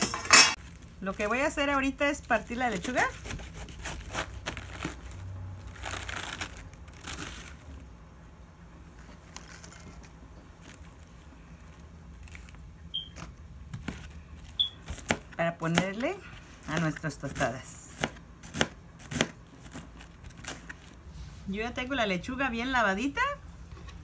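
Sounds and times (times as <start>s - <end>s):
lettuce leaves crackling: 0.6s - 8.0s, 8.9s - 21.1s.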